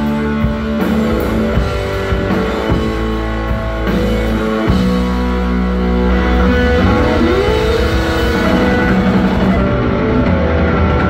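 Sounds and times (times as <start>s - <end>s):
bass guitar: 0.0s - 11.0s
distorted electric guitar: 0.0s - 11.0s
drum kit: 0.0s - 11.0s.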